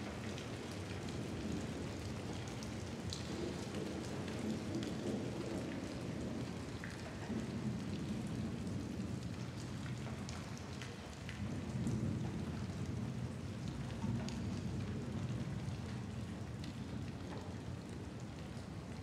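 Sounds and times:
raindrop ticks: 0:00.0 - 0:19.0
steady rain: 0:00.0 - 0:19.0.

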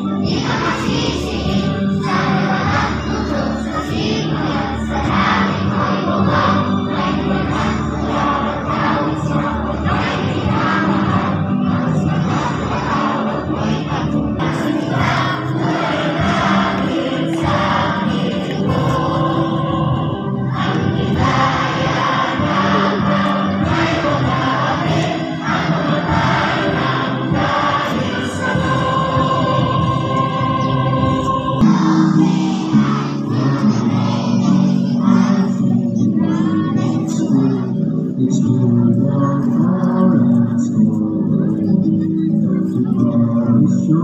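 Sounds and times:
choir singing with accompaniment: 0:00.0 - 0:44.0.

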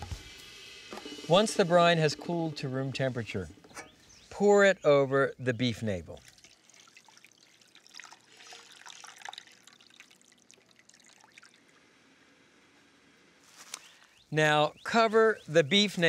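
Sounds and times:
liquid trickling and splashing: 0:06.1 - 0:12.1.

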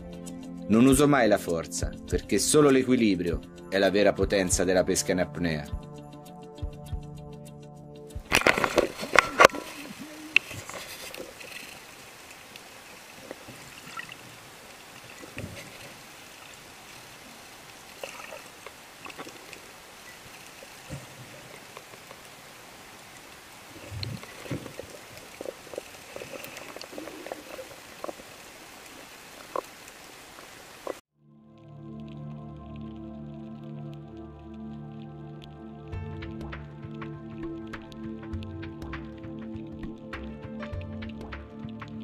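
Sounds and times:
water sloshing: 0:08.2 - 0:31.0
underwater hiss of moving water: 0:08.6 - 0:31.0.

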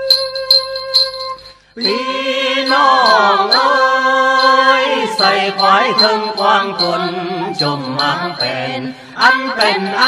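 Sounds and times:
folk melody with gliding notes: 0:00.0 - 0:10.0
jingle bells shaken: 0:00.0 - 0:10.0.

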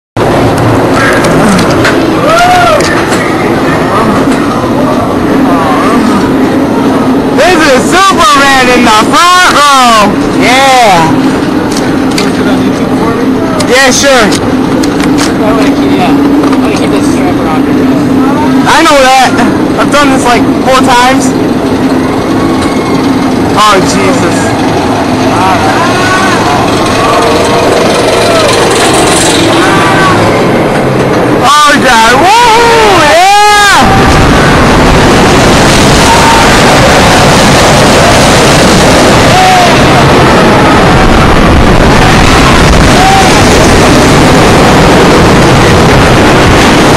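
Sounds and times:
roller coaster rumbling on track: 0:00.2 - 0:46.9
roller coaster chain lift clattering: 0:21.3 - 0:32.2.

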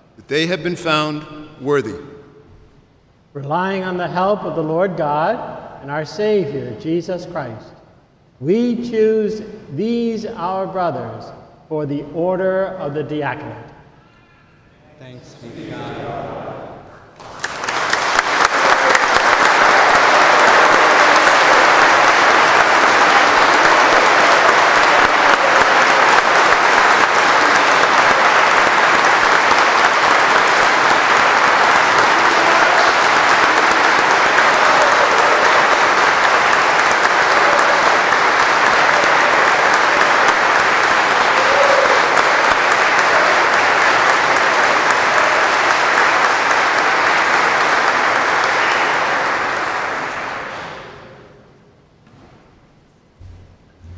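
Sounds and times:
congregation applauding: 0:17.1 - 0:51.4.

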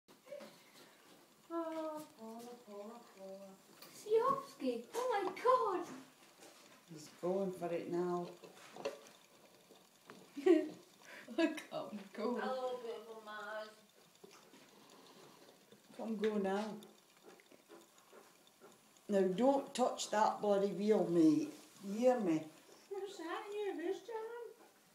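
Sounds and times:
plastic hamster wheel ticking: 0:00.2 - 0:24.9.

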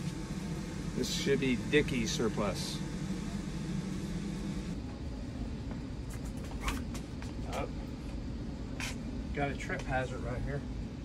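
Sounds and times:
air handling hum: 0:00.0 - 0:11.0
lower hum: 0:00.0 - 0:11.0.

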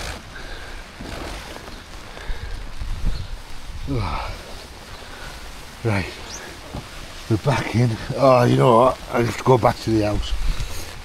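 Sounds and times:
tent zip pulled open: 0:00.0 - 0:03.7, 0:10.4 - 0:11.0
fabric rustling: 0:00.0 - 0:11.0
heavy rain hiss: 0:00.0 - 0:11.0
wind rumble on microphone: 0:01.2 - 0:07.2, 0:10.1 - 0:11.0.

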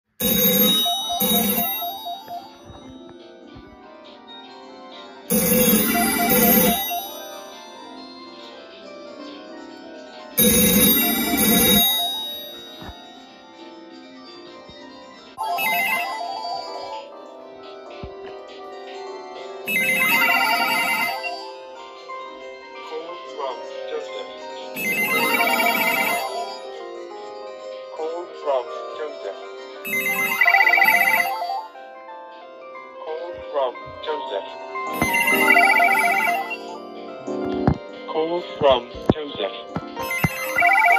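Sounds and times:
telephones ringing: 0:00.2 - 0:03.3, 0:05.3 - 0:08.2, 0:10.4 - 0:13.4, 0:15.4 - 0:17.2, 0:19.7 - 0:21.5, 0:24.8 - 0:26.8, 0:29.9 - 0:31.7, 0:34.9 - 0:37.8, 0:39.9 - 0:40.9
warbling electronic ring: 0:05.3 - 0:07.5, 0:10.4 - 0:13.0.

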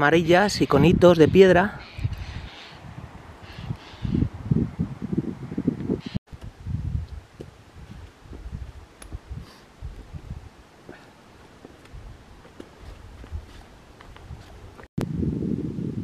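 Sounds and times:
wind buffeting microphone: 0:00.0 - 0:11.0, 0:11.6 - 0:16.0.

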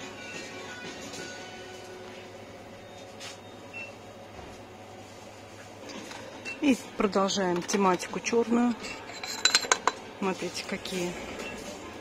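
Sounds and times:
shop floor hum: 0:00.0 - 0:12.0.

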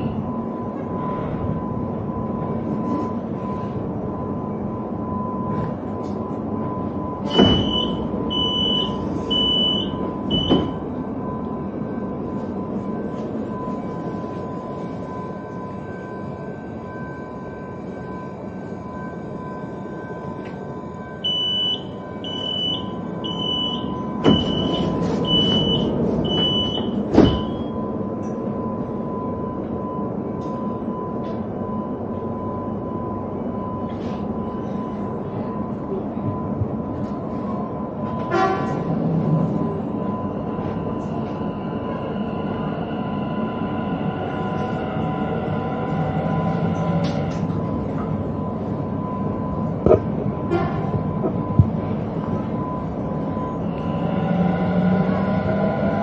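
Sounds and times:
high door warning beeps: 0:00.0 - 0:38.6
standing train hum: 0:00.0 - 0:56.0
train doors thudding shut: 0:07.2 - 0:08.0, 0:10.3 - 0:11.0, 0:24.2 - 0:27.7
thin constant whine: 0:08.0 - 0:25.2.

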